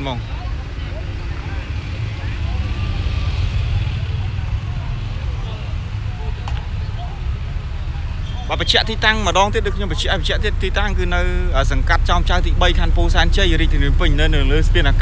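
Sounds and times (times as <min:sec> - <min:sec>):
cars driving past: 0:00.0 - 0:15.0
low rumble of road traffic: 0:00.0 - 0:15.0
man talking: 0:08.5 - 0:15.0.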